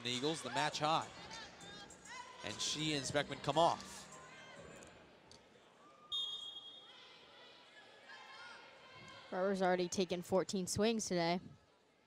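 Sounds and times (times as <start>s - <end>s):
faint gym background noise: 0.0s - 12.0s
referee's whistle blast: 6.1s - 6.8s.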